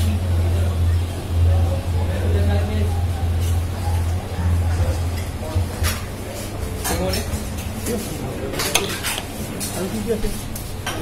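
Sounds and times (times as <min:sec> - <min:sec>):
dishes and cutlery clinking: 0:06.8 - 0:09.9.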